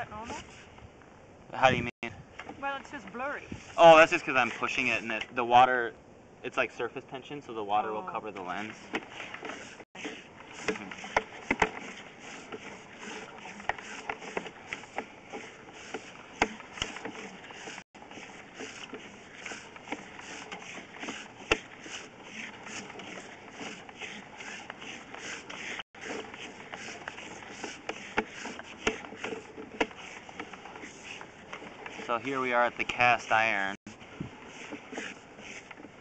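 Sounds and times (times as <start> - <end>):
cable scraping in a pipe: 0.0 - 0.8, 2.4 - 5.7, 7.8 - 36.0
sharp clicks of a rod: 18.6 - 32.1.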